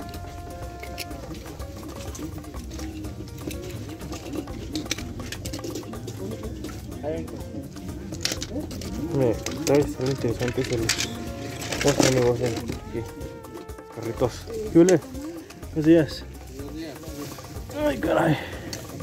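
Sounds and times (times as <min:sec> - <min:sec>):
plastic toy cars clattering: 0:00.0 - 0:13.3
music playing: 0:00.0 - 0:19.0
people talking: 0:06.0 - 0:18.7.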